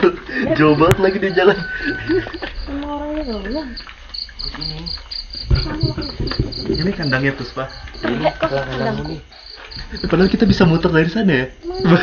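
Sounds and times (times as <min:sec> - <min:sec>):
crickets chirping: 0:00.0 - 0:12.0
low thump: 0:05.4 - 0:07.2.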